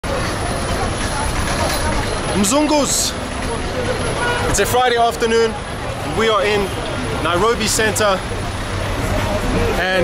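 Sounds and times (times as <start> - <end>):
bus engines running: 0.0 - 10.0
crowd chatter: 0.0 - 10.0
rumble of traffic: 0.0 - 10.0.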